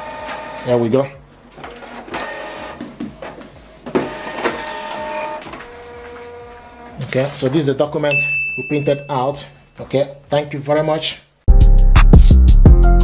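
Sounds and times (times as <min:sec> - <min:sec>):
printer motors whining: 0:00.0 - 0:00.9, 0:01.5 - 0:07.3.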